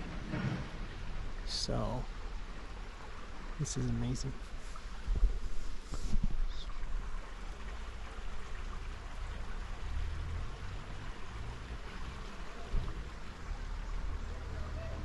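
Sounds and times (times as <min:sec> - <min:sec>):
creek running: 0:00.0 - 0:15.0.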